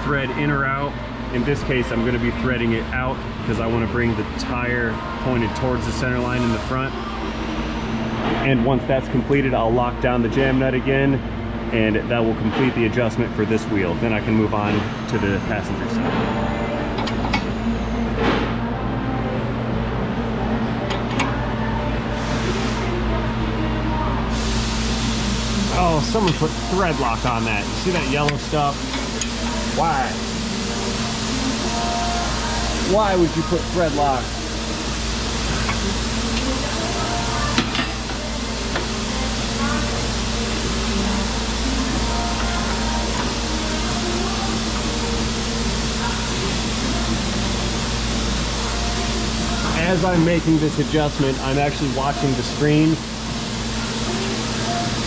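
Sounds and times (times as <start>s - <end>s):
shop hum: 0.0s - 55.0s.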